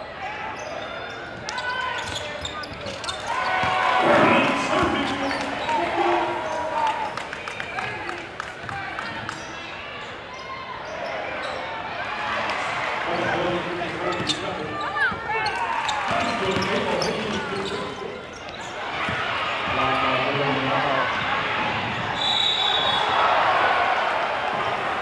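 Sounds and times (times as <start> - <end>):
crowd chattering: 0.0 - 25.0
sneakers squeaking: 0.4 - 11.9, 13.3 - 20.2
referee's whistle: 22.2 - 23.2.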